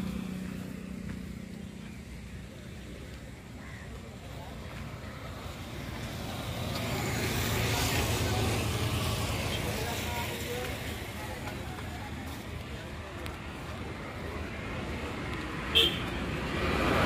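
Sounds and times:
vehicle passing on road: 0.0s - 17.0s.

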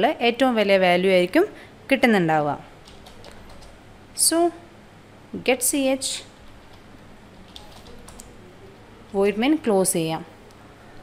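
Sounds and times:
faint computer keyboard keystrokes: 2.8s - 3.8s, 6.6s - 8.4s.

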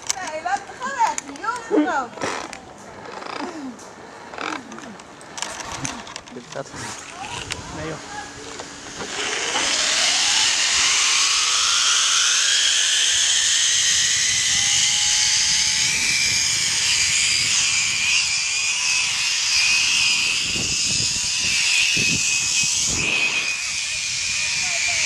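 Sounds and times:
zip-line pulleys whining on cable: 5.4s - 25.0s
rush of air: 22.7s - 23.6s.

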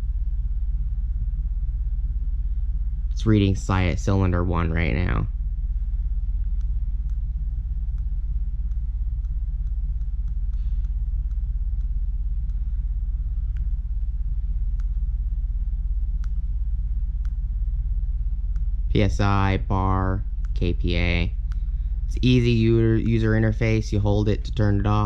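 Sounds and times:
low rumble: 0.0s - 25.0s.

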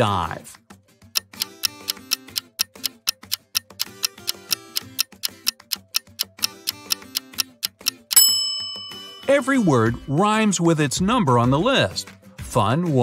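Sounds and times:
soft music with low notes: 0.0s - 13.0s
countdown timer ticking: 1.2s - 10.2s.

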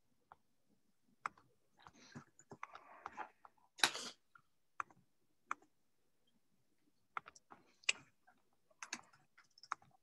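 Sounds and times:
computer keyboard and mouse clicks: 4.8s - 5.7s, 7.1s - 8.0s, 8.8s - 10.0s.

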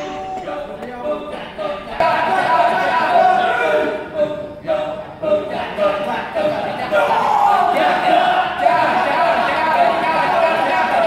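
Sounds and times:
men chanting in chorus: 0.0s - 11.0s.

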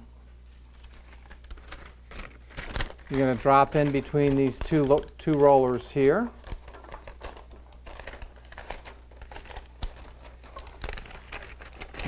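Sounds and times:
paper liner crinkling and rustling: 0.5s - 12.0s.

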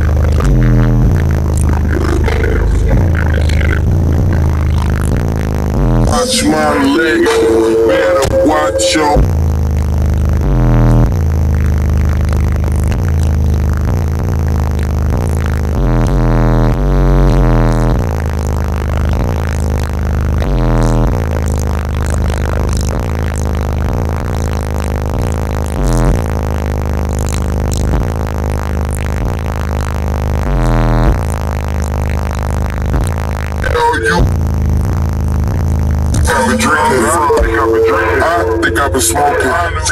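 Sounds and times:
bass-heavy music in a car: 0.0s - 39.9s.

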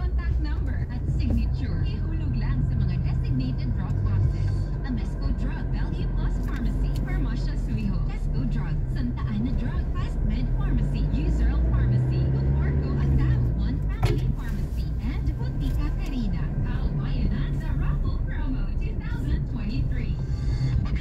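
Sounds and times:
car engine and road noise: 0.0s - 21.0s
indistinct voices talking: 0.0s - 21.0s.

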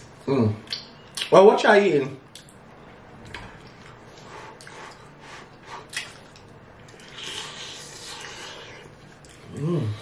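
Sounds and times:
chewing and lip smacking: 2.2s - 5.1s, 5.9s - 9.7s.

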